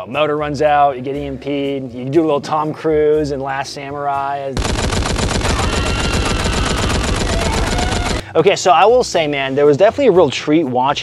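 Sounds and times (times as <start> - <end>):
gatling gun firing rapidly: 4.6 - 8.2.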